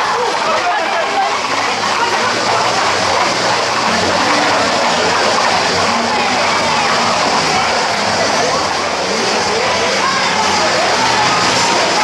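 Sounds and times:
crowd shouting and calling: 0.0s - 12.0s.

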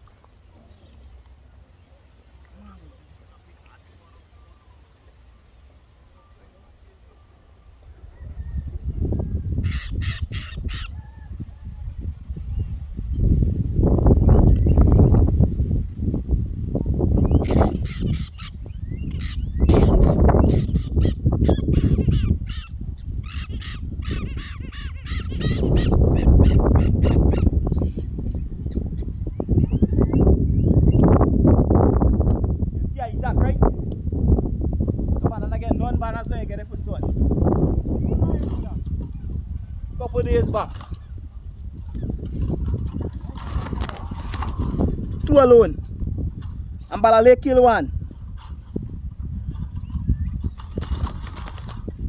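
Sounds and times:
rustling and buffeting noise: 0.0s - 52.0s
bird squawking harshly: 9.6s - 10.9s, 17.4s - 27.5s.

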